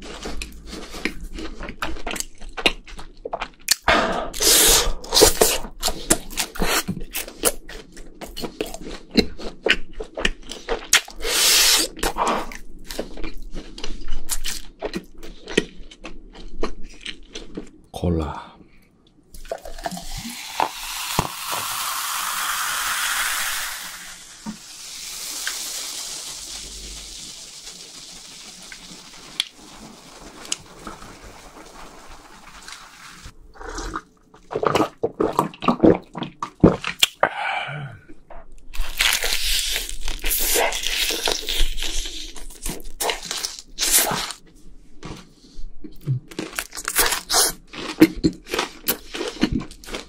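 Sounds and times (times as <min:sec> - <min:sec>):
crunching and eating sounds: 0:00.0 - 0:18.0, 0:24.4 - 0:37.2, 0:38.0 - 0:50.0
cola pouring into glass: 0:19.4 - 0:27.3
foam fizzing: 0:20.0 - 0:33.3.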